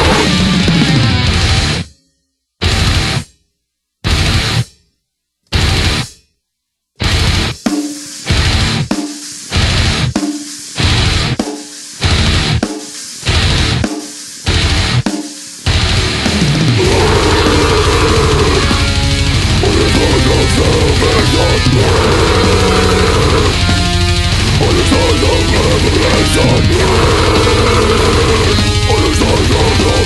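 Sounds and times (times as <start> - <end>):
death metal drums and cymbals: 0.0 - 1.9, 2.6 - 3.3, 4.0 - 4.8, 5.5 - 6.3, 7.0 - 30.0
heavy guitar: 0.0 - 2.0, 2.6 - 3.3, 4.0 - 4.8, 5.5 - 6.2, 7.0 - 30.0.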